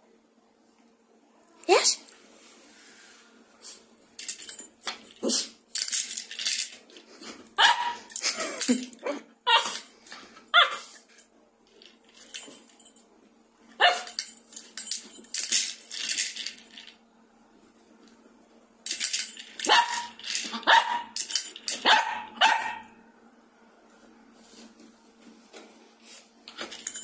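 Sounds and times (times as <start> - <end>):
small dog barking sharply: 7.6 - 8.1, 19.7 - 21.1, 21.8 - 22.9.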